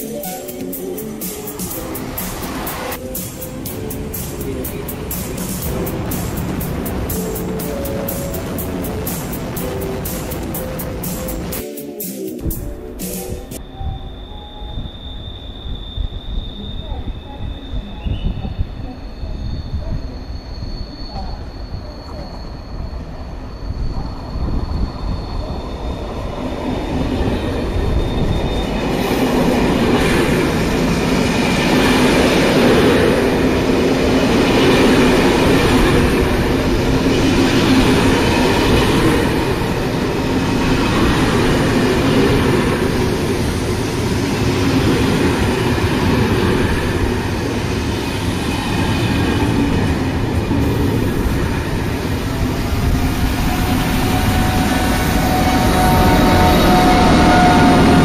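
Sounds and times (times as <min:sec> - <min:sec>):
train wheels rumbling on rails: 0:00.0 - 0:11.6, 0:15.6 - 0:58.0
electric locomotive whine: 0:00.0 - 0:58.0
faint high squeal: 0:13.6 - 0:29.2, 0:52.2 - 0:58.0.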